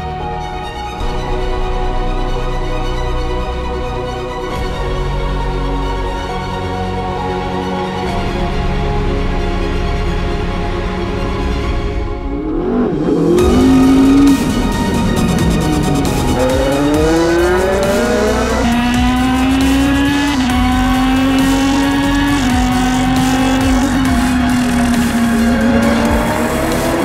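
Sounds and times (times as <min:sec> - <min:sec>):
background music: 0:00.0 - 0:27.0
race car engine accelerating: 0:11.9 - 0:27.0.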